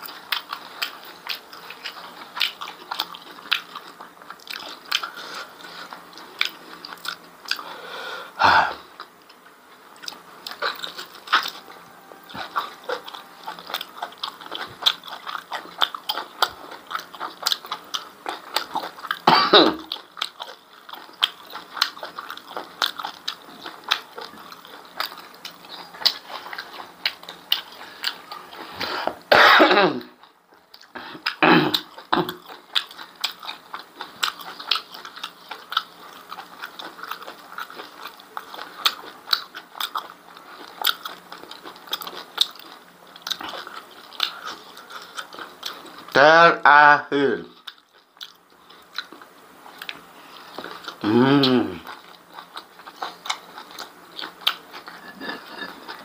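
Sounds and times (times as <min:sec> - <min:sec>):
wet chewing and smacking: 0:00.0 - 0:07.7, 0:09.0 - 0:29.2, 0:30.0 - 0:46.2, 0:47.5 - 0:56.0
loud coughs: 0:19.2 - 0:19.8, 0:29.3 - 0:30.1, 0:31.4 - 0:32.3.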